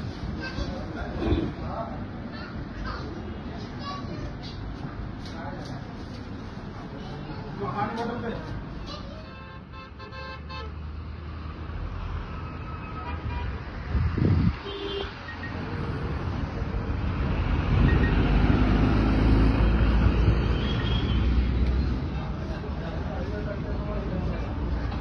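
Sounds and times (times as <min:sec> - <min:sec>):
vehicles rumbling by: 0:00.0 - 0:25.0.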